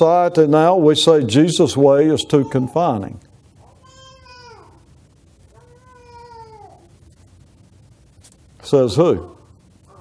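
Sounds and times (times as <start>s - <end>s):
cat meowing: 5.5s - 6.9s.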